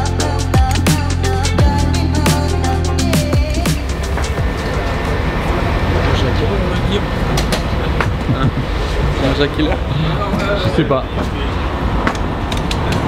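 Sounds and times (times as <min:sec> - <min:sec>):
background music: 0:00.0 - 0:06.2
indistinct voices: 0:00.0 - 0:13.0.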